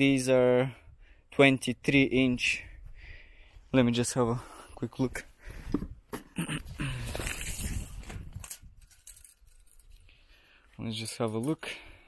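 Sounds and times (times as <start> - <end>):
rustling handling noise: 6.8 - 11.6.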